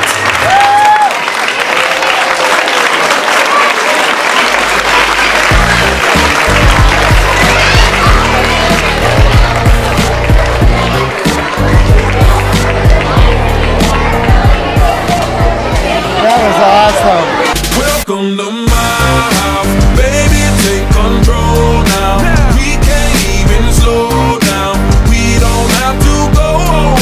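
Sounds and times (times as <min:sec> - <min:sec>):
audience applauding: 0:00.0 - 0:17.6
music with steady bass beat: 0:05.4 - 0:16.1, 0:17.5 - 0:18.1, 0:18.7 - 0:27.0.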